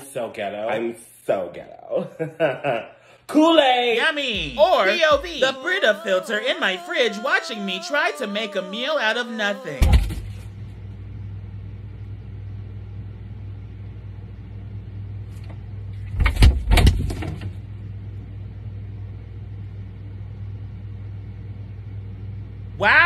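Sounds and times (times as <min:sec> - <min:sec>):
refrigerator humming: 0:02.3 - 0:23.0.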